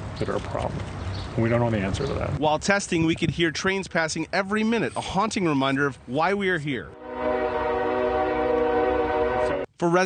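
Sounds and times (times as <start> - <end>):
low rumble of train: 7.0 - 9.7
train air horn blast: 7.0 - 9.7.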